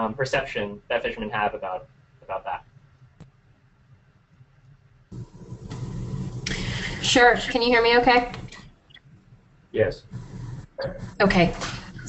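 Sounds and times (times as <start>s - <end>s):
low rumble and hiss: 0.0s - 12.0s.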